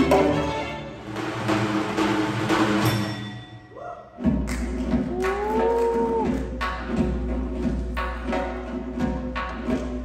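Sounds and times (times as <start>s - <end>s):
hand drum striking: 4.2s - 10.0s.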